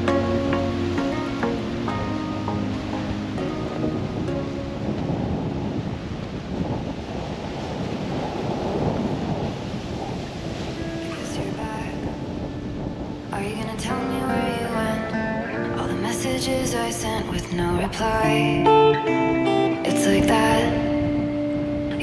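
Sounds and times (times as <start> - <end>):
background music: 0.0 - 5.8, 10.7 - 22.0
surf breaking on rocky shore: 0.0 - 22.0
wind on microphone: 0.0 - 22.0.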